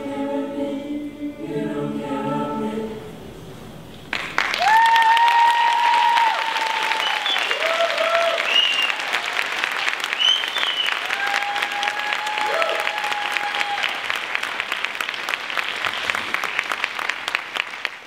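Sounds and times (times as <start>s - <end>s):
audience applause: 4.1s - 18.0s
high cheering calls: 4.4s - 9.4s, 10.1s - 14.2s.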